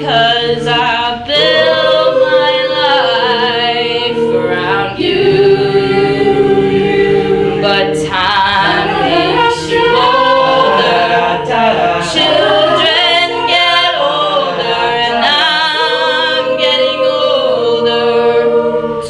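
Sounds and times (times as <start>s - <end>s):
a cappella group singing: 0.0s - 19.0s.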